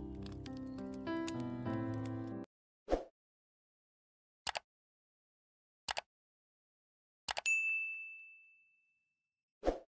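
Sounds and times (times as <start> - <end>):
computer mouse double click: 5.9 - 6.1
high bell ding: 7.5 - 9.1.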